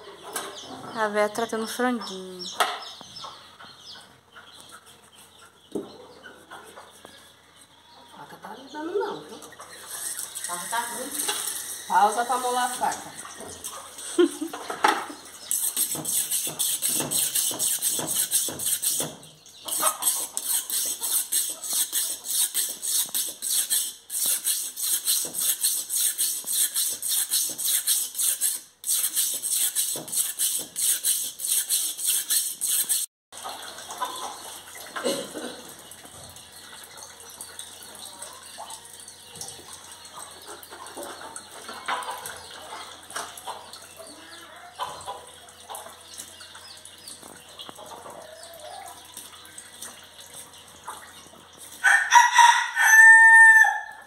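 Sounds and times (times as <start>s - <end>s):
knife scraping on sharpening block: 15.5s - 33.1s.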